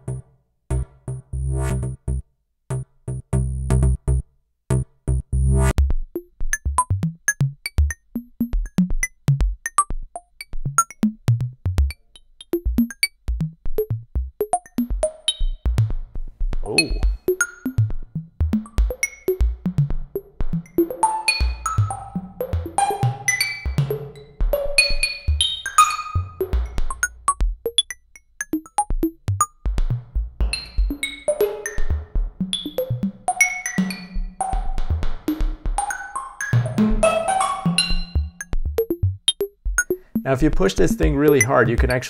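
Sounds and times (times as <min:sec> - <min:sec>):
drum-machine beat: 0:05.1 - 0:12.0, 0:12.6 - 0:23.0, 0:26.3 - 0:31.0, 0:34.5 - 0:35.7, 0:36.6 - 0:42.0.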